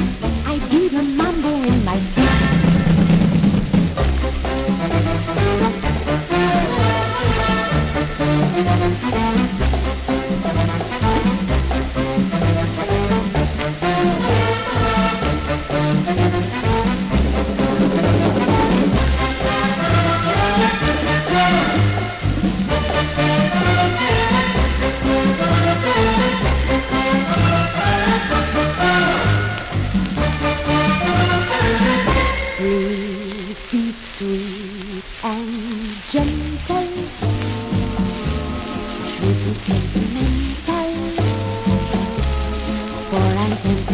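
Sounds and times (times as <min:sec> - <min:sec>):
bass: 0:00.0 - 0:32.8, 0:36.1 - 0:43.9
drums: 0:00.0 - 0:43.9
record surface hiss and crackle: 0:00.0 - 0:43.9
latin dance orchestra: 0:02.2 - 0:32.8.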